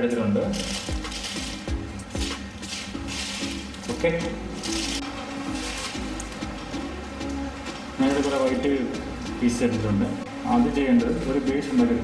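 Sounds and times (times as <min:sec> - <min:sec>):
paper rustling: 0:00.5 - 0:06.5.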